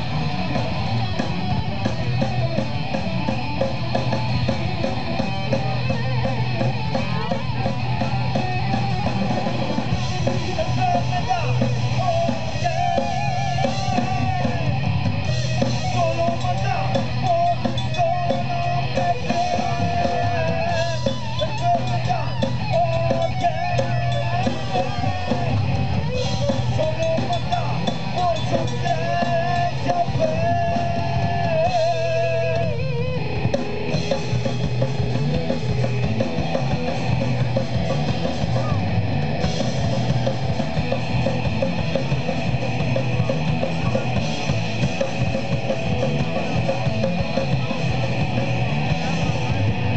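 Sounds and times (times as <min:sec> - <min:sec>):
rock band playing: 0:00.0 - 0:49.9.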